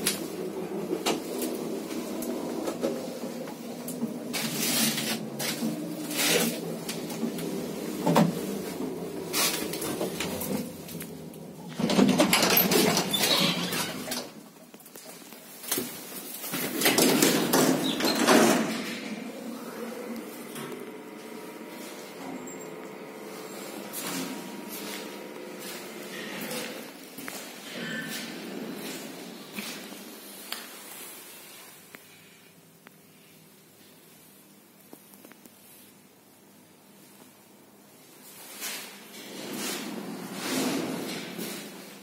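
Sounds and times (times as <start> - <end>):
lift doors clattering: 0.0 - 14.4, 16.5 - 27.1
steady multi-tone hum: 0.0 - 42.0.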